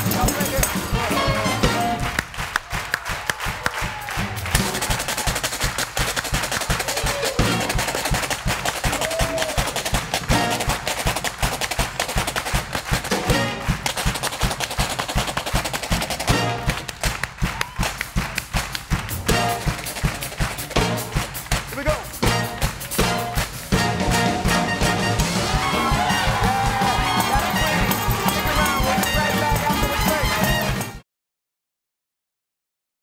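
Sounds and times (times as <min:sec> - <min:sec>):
live band playing: 0:00.0 - 0:02.9, 0:04.0 - 0:11.9, 0:12.5 - 0:31.0.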